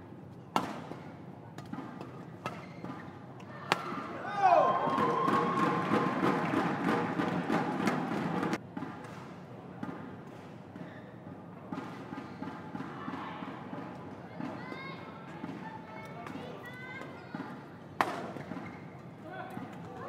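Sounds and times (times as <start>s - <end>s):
rackets hitting shuttlecock: 0.5s - 4.1s, 18.0s - 18.7s
shoes squeaking on court: 2.5s - 3.2s
crowd chatter: 3.2s - 8.7s, 9.4s - 20.0s.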